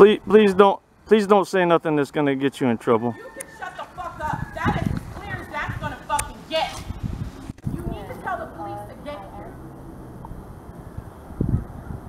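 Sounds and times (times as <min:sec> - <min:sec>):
indistinct voices talking: 0:00.0 - 0:09.8.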